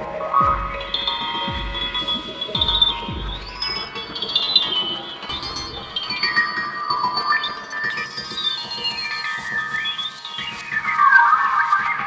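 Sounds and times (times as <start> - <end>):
music with gliding high tones: 0.0 - 12.0.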